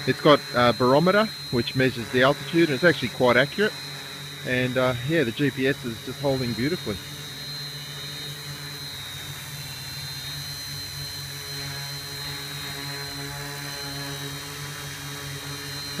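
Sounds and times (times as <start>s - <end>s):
quadcopter buzzing drone: 0.0s - 16.0s
thin high whine: 0.0s - 16.0s.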